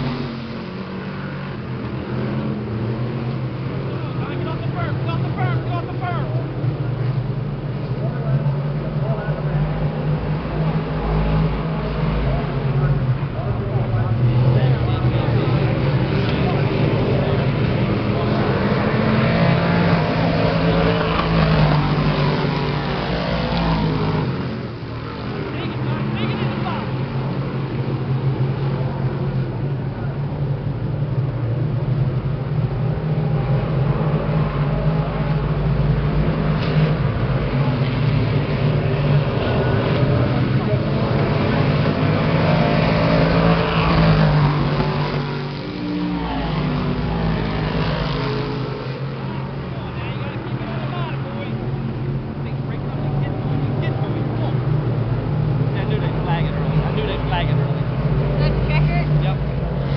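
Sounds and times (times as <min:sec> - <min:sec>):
race car engines droning: 0:00.0 - 0:59.9.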